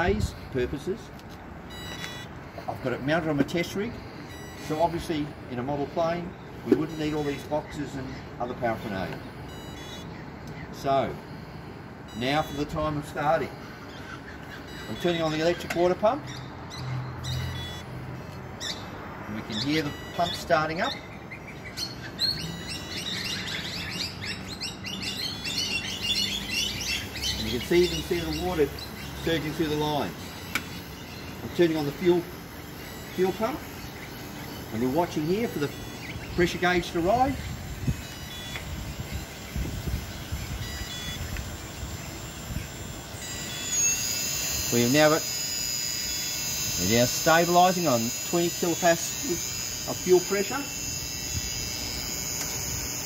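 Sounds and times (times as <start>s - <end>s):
birds chirping: 0.0s - 53.0s
electric water pump humming: 21.8s - 53.0s.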